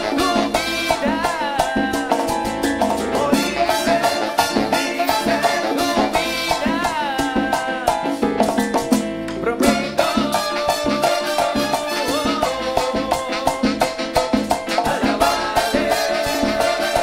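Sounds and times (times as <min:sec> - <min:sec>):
band playing latin dance music: 0:00.0 - 0:17.0.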